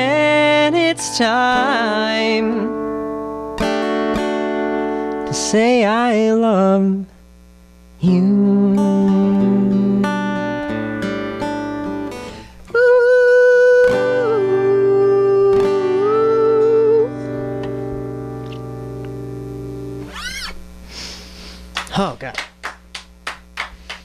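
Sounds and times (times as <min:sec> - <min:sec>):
acoustic guitar strumming: 0:00.0 - 0:07.0, 0:08.0 - 0:20.6.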